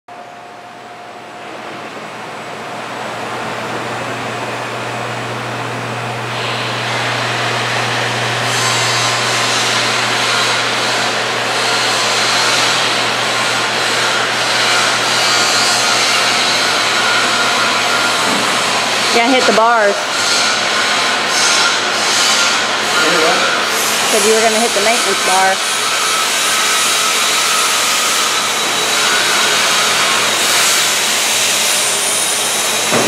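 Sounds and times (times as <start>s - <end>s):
hydraulic motor and pump hum: 0.1s - 33.0s.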